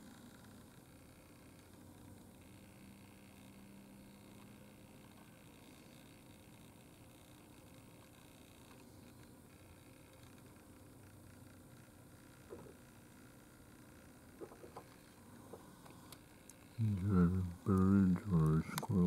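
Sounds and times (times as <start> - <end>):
faint background hiss: 10.9 - 19.0.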